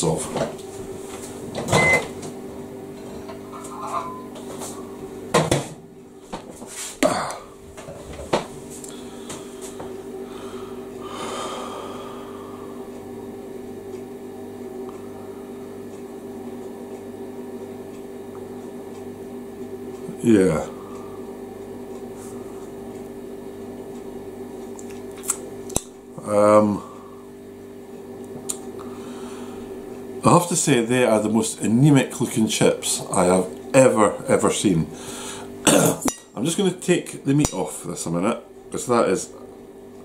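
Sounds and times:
low electrical hum: 0.0s - 40.0s
cutlery clinking on a plate: 3.5s - 4.3s.

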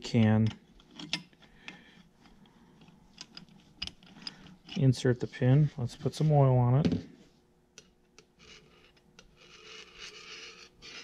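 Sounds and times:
soft rubbing and scraping: 4.6s - 7.4s, 8.4s - 11.0s.

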